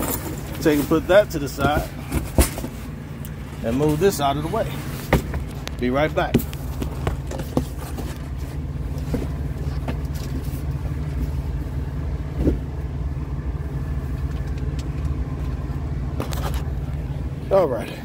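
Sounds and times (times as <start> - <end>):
vehicle engine idling: 0.0 - 18.0.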